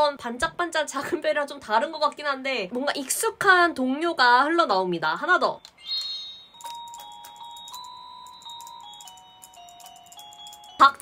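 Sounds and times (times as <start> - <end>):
toy wand electronic chime melody: 5.6 - 11.0.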